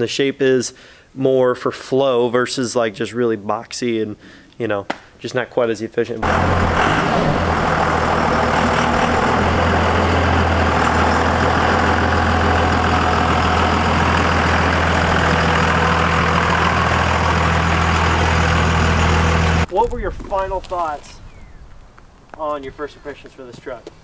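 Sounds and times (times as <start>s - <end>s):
diesel truck engine idling: 6.2s - 19.7s.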